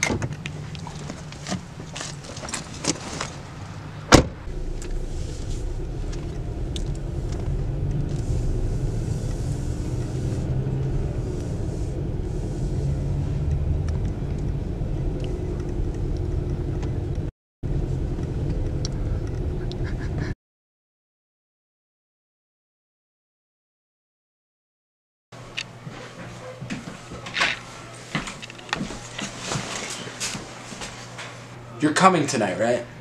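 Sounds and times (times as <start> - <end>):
car engine humming inside cabin: 0.0 - 20.3
car door shutting: 4.1 - 11.0.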